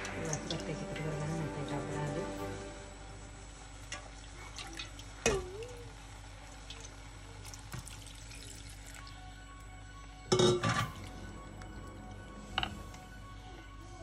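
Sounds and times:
water pouring into a pot: 0:03.6 - 0:09.2.

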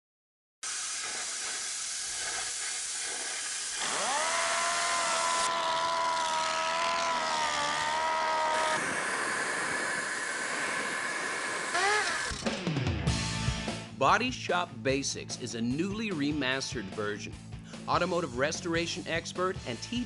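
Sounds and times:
steady air hiss: 0:00.6 - 0:05.5, 0:07.4 - 0:12.3
machine whine: 0:00.7 - 0:12.6.

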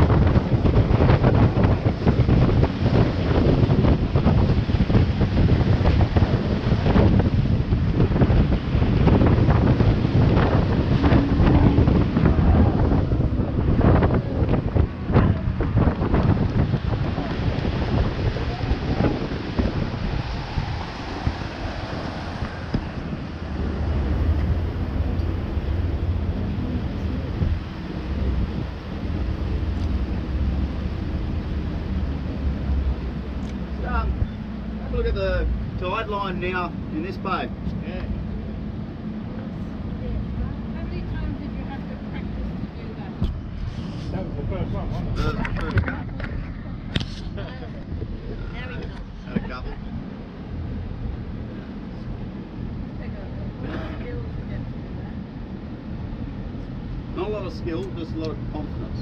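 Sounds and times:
boat engine drone: 0:00.0 - 0:59.0
water rushing and slapping hull: 0:00.0 - 0:59.0
wind buffeting microphone: 0:00.0 - 0:59.0.

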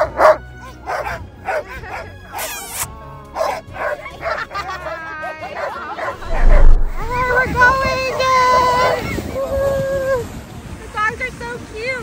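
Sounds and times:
sled dogs barking and yipping: 0:00.0 - 0:02.4, 0:03.3 - 0:06.6
loud low rumble: 0:06.2 - 0:07.8.

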